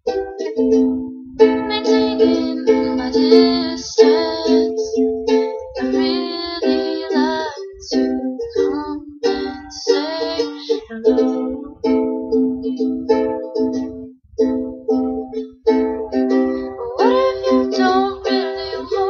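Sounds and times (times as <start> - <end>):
ukulele strumming chords: 0.0 - 19.0
woman singing: 1.6 - 5.1, 5.8 - 13.3, 16.0 - 19.0.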